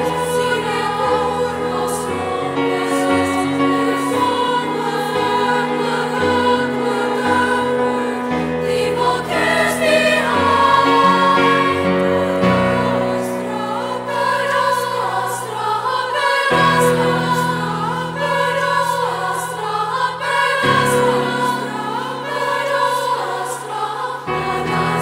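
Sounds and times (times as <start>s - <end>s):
choir singing sustained chords: 0.0s - 25.0s.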